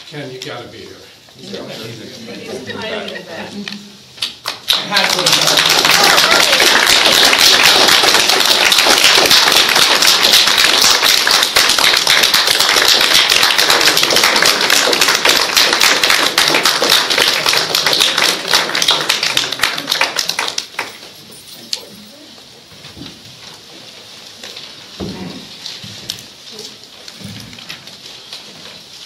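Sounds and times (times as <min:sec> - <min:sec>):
audience applauding: 0:04.4 - 0:21.0.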